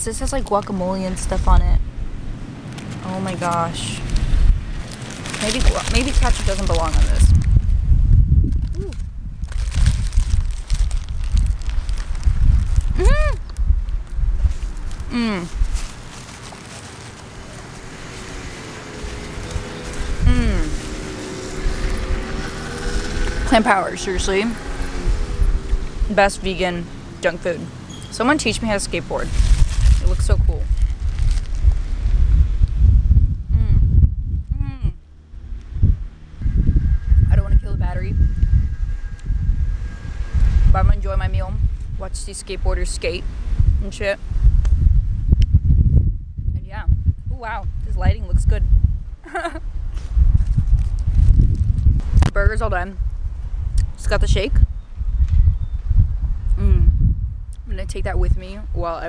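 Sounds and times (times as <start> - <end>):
wind buffeting microphone: 0.0 - 59.0
paper wrapper rustling: 4.8 - 7.4, 8.5 - 13.1, 14.5 - 18.4, 29.3 - 31.8
person humming mm while eating: 15.1 - 15.6, 20.2 - 20.9, 33.5 - 35.0, 56.5 - 57.1.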